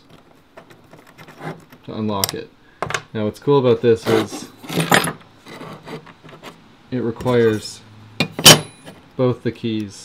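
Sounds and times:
steel plates scraping on wood: 4.0 - 6.6.

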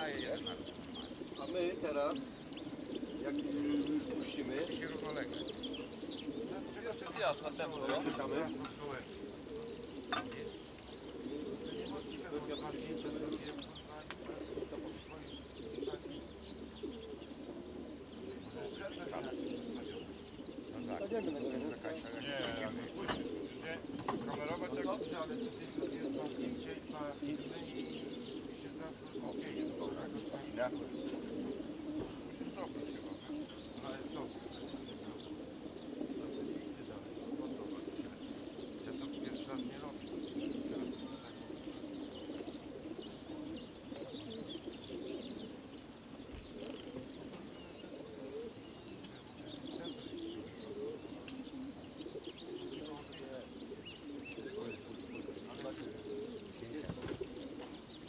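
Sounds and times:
pigeons cooing: 0.0 - 58.0
small birds chirping: 0.0 - 58.0.

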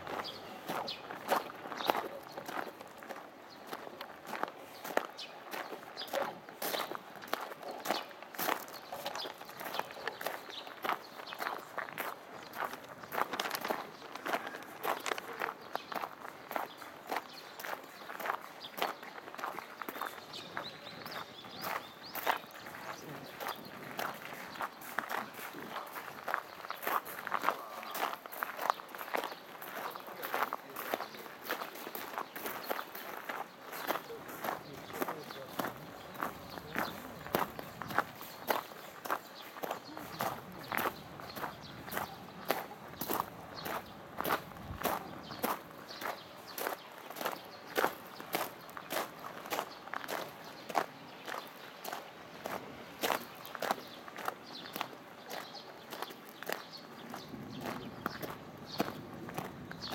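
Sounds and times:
footsteps crunching on gravel: 0.0 - 59.9.

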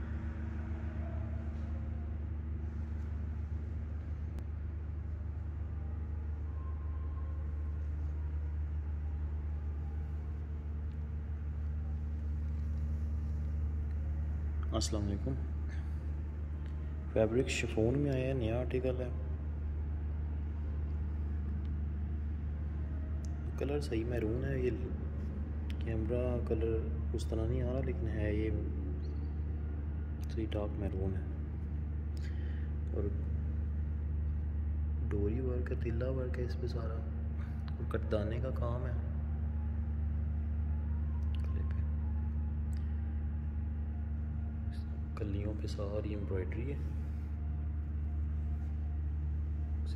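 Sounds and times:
steady low buzzy hum: 0.0 - 49.9.

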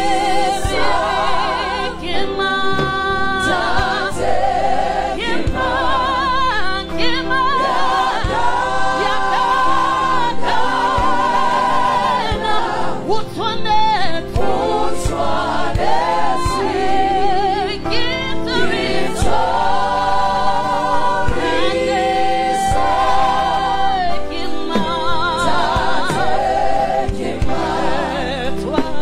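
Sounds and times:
kick drum: 0.0 - 1.6, 2.2 - 4.6, 7.7 - 12.7, 24.6 - 29.0
gospel choir singing: 0.0 - 29.0
live band: 0.1 - 29.0.

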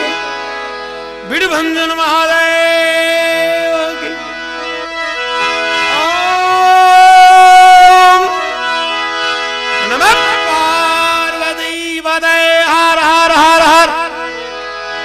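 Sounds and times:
harmonium chords: 0.0 - 15.0.

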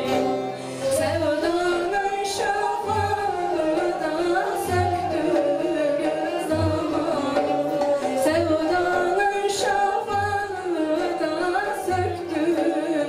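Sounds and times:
long-necked lute: 0.0 - 13.0
woman singing folk song: 0.0 - 13.0.

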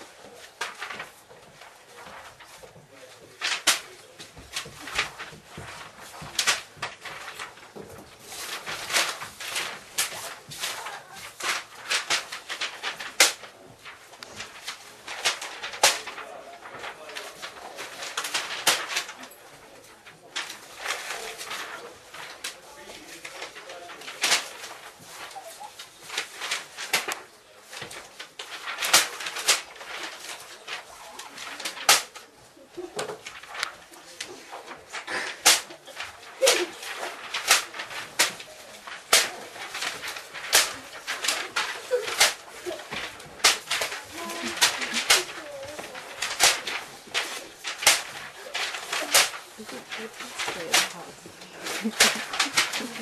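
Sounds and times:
paper rustling and flapping: 0.0 - 53.0
paper snaps: 0.0 - 53.0
wordless murmuring and cooing: 20.3 - 26.5, 30.6 - 53.0.

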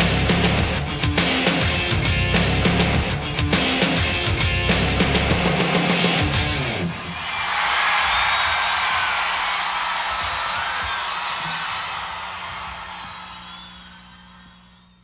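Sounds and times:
crowd screaming and cheering: 5.9 - 15.0.

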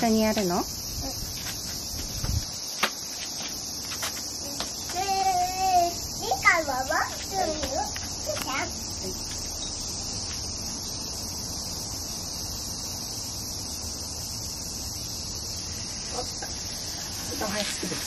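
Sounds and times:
cicadas buzzing: 0.0 - 18.0
small child's voice: 1.0 - 1.2, 4.4 - 8.9.

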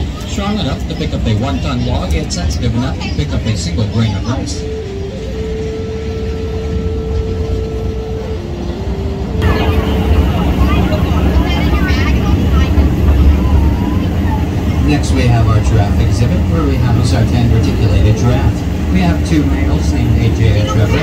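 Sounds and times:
mini train rumbling: 0.0 - 21.0
passengers chattering: 0.0 - 21.0.

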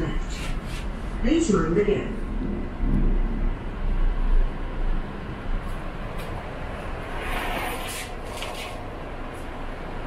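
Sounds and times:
train rumbling to a stop: 2.1 - 10.0.

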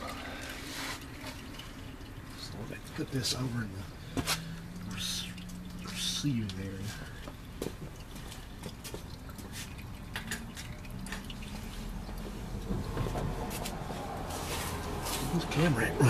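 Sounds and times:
fluid dripping: 0.0 - 16.0
low steady hum: 0.0 - 16.0.

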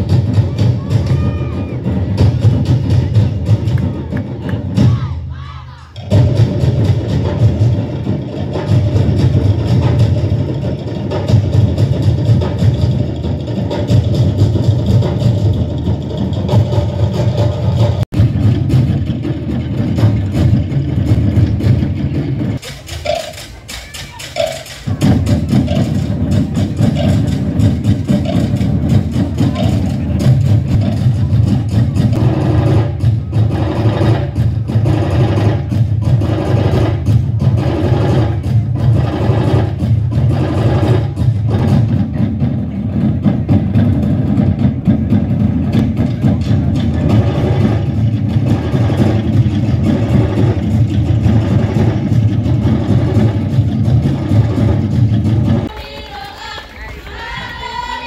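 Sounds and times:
heavier drum beat: 0.0 - 56.0
drum ensemble fast rhythm: 0.0 - 58.0.

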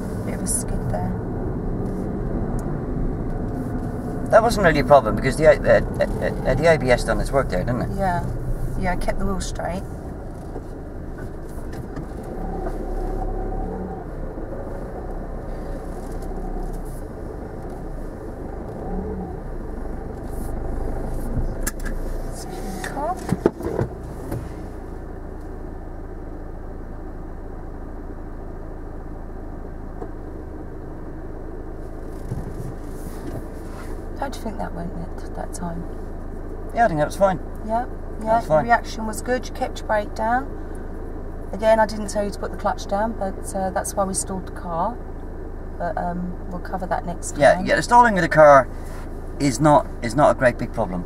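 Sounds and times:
car engine idling: 0.0 - 51.0.

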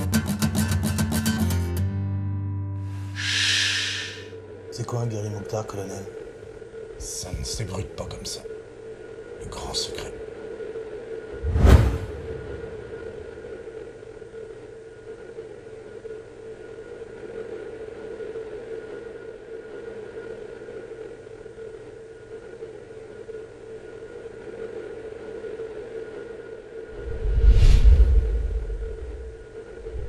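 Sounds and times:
held mid-pitched hum: 2.9 - 22.4, 26.7 - 30.0
hiss: 3.0 - 4.3
low rumble: 11.3 - 14.3, 26.9 - 30.0.

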